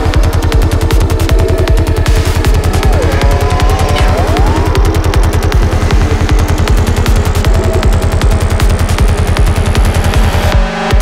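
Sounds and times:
gliding synth tones: 0:00.0 - 0:08.6
kick drum: 0:00.0 - 0:11.0
rolling bassline: 0:00.0 - 0:11.0.

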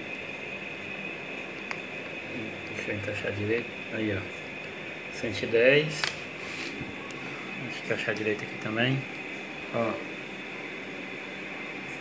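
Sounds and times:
electric fan whirring: 0:00.0 - 0:12.0.

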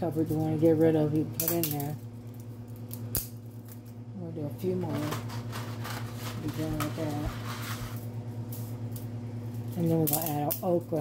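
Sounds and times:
steady low hum: 0:00.0 - 0:11.0
dry spaghetti snapping: 0:01.4 - 0:03.9.

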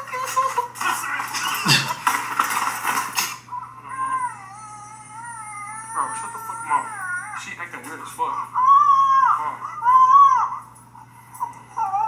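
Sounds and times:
recorded baby crying: 0:03.5 - 0:10.8, 0:11.6 - 0:12.0.

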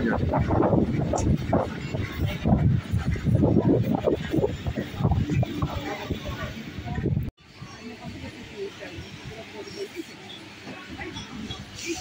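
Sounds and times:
wind rumble on microphone: 0:00.0 - 0:08.3
indistinct talking: 0:00.0 - 0:12.0.

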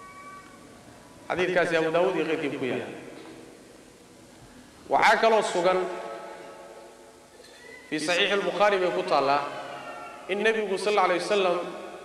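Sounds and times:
faint room hum: 0:00.0 - 0:12.0
man speaking with echo: 0:01.3 - 0:03.2, 0:04.9 - 0:06.8, 0:07.9 - 0:12.0.

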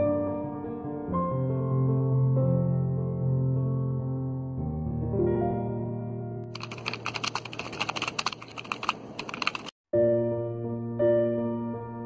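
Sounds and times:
keyboard key clicks: 0:06.6 - 0:09.7.

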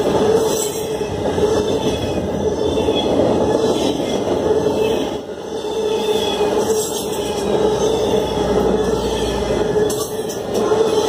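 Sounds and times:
steel wheels on rail: 0:00.0 - 0:11.0.

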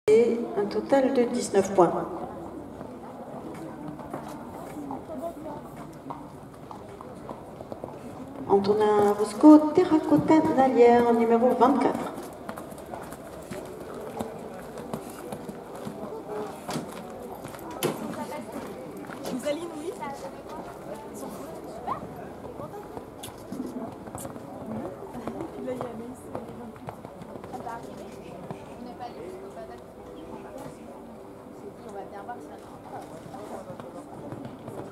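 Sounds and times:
faint voices: 0:00.1 - 0:34.9
people chattering: 0:00.1 - 0:34.9
horse hoofbeats on sand: 0:05.7 - 0:19.8.

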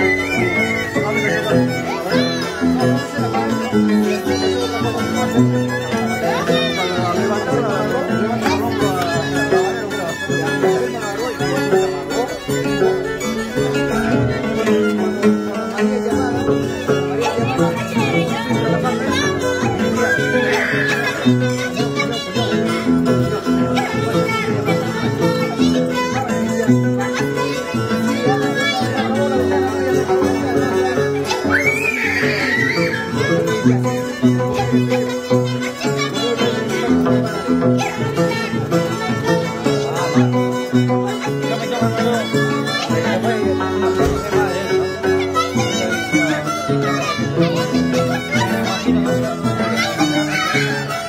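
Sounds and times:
violin playing: 0:00.0 - 0:51.0.

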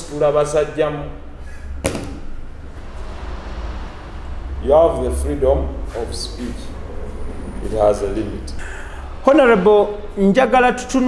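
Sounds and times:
low steady hum: 0:00.0 - 0:11.0
sharp tap: 0:01.8 - 0:02.3.

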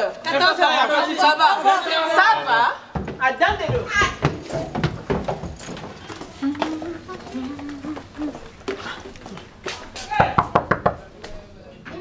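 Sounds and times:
knuckles knocking on door: 0:10.2 - 0:11.1.

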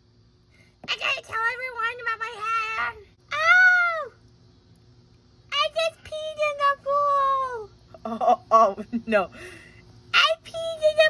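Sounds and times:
high-pitched cry: 0:02.3 - 0:04.2.

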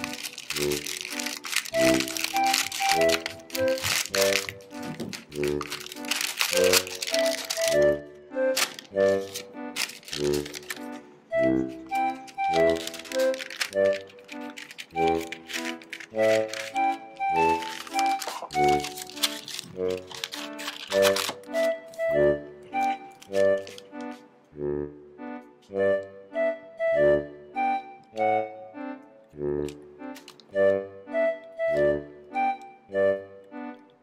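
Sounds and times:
tissue paper crinkling: 0:00.0 - 0:11.0, 0:11.7 - 0:22.0, 0:22.8 - 0:23.9
background music: 0:00.0 - 0:34.0.

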